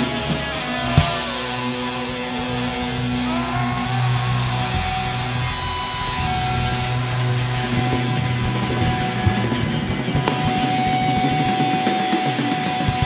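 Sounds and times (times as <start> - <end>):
electric guitar bending notes: 0.0 - 13.0
heavy metal band playing: 0.0 - 13.0.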